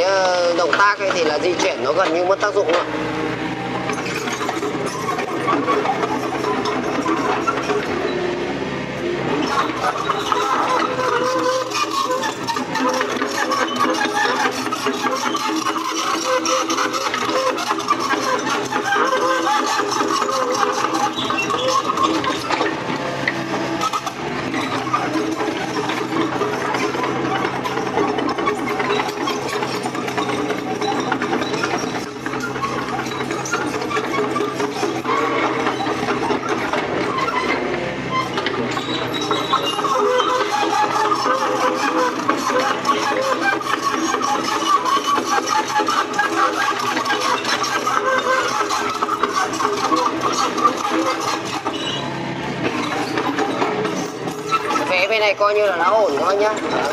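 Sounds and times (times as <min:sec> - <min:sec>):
excavator diesel engine running: 0:00.0 - 0:56.9
hydraulics working: 0:00.0 - 0:56.9.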